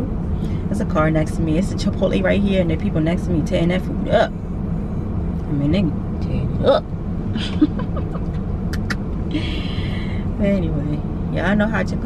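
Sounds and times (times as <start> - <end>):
car engine idling: 0.0 - 12.0
person laughing softly: 7.4 - 9.9.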